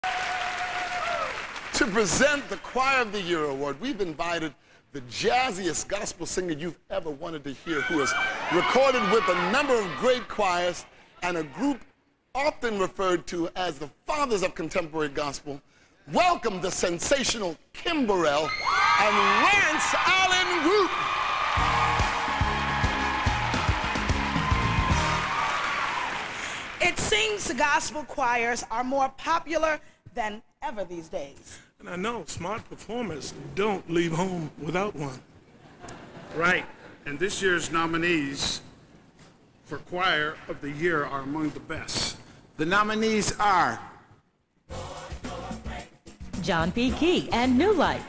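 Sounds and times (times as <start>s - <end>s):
audience applauding: 0.0s - 2.6s, 19.0s - 26.9s
band music with bass and drums: 21.6s - 25.2s.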